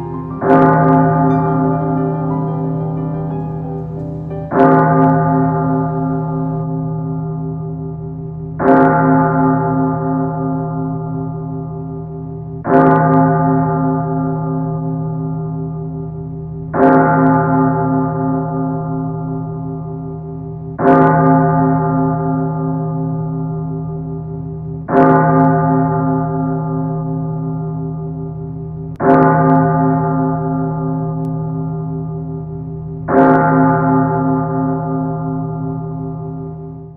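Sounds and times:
bell tolling: 0.0 - 6.6.

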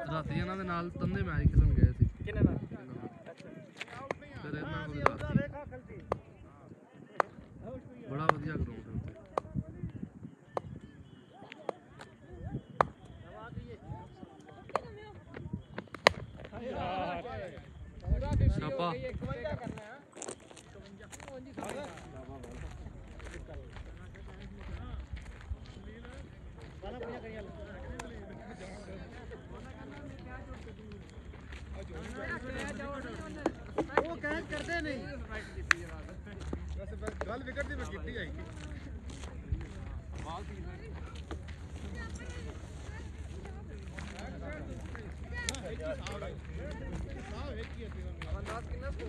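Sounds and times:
indistinct chatter of voices: 0.0 - 49.0.

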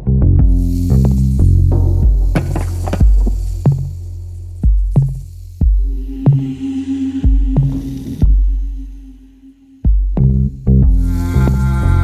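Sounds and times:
light percussion: 0.0 - 12.0
sustained bass line: 0.0 - 12.0.

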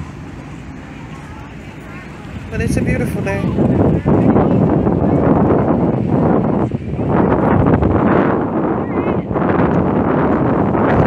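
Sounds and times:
wind blowing on microphone: 0.0 - 11.0.

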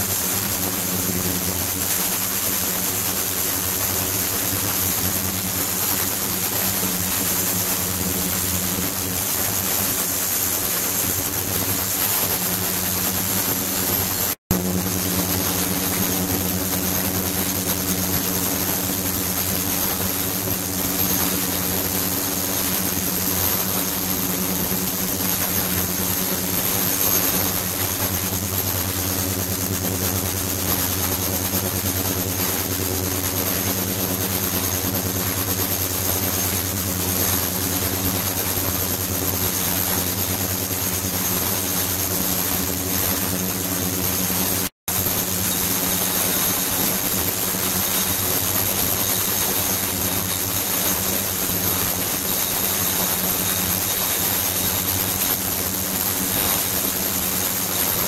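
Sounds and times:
thin high whine: 0.0 - 58.0
ultrasonic bath humming: 0.0 - 58.0.

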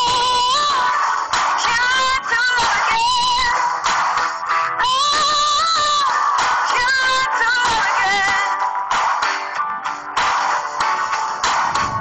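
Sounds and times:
person singing: 0.0 - 3.9, 4.5 - 8.6
musical accompaniment: 0.0 - 12.0.

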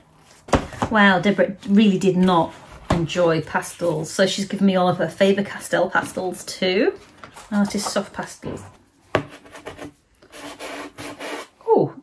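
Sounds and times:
pastel scraping cardboard: 9.1 - 11.6.

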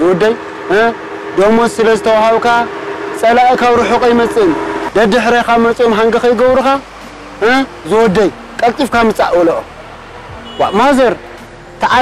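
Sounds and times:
man calling out loudly: 3.7 - 4.4.

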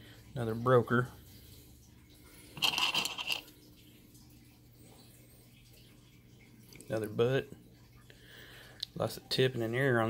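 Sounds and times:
stone flakes clattering in a bowl: 2.6 - 3.5.

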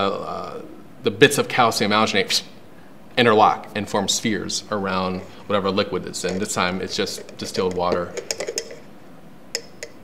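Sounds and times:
metal strainer clinking on bowl: 6.2 - 8.9, 9.6 - 10.0.

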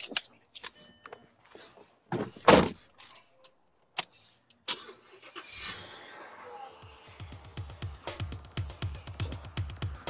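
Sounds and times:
car engine starting: 4.7 - 8.2.

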